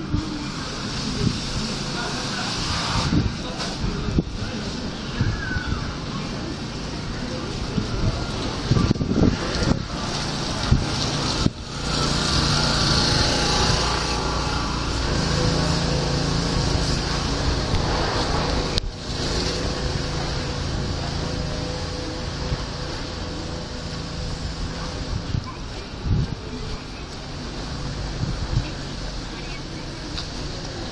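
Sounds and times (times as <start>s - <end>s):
outdoor street noise: 0.0s - 30.9s
low engine-like hum: 3.1s - 30.9s.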